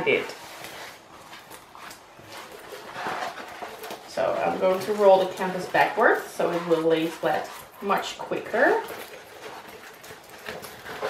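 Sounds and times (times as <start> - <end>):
plastic rustling and crinkling: 0.0 - 11.0.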